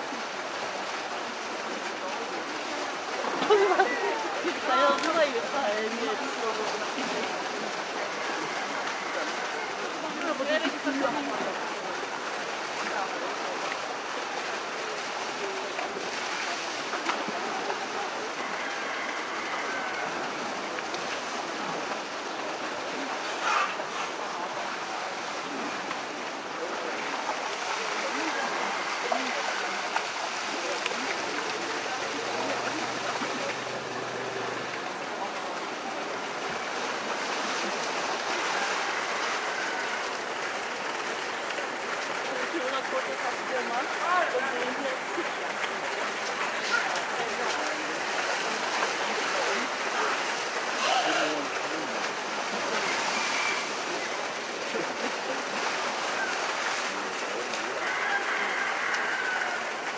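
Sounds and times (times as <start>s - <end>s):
elephants splashing in water: 0.0s - 59.9s
water pouring into pool: 0.0s - 59.9s.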